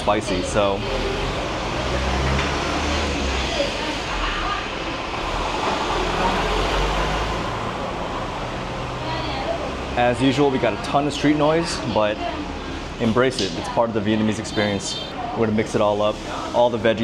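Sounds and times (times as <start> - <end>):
traffic roar: 0.0 - 17.0
vehicles passing: 0.0 - 17.0.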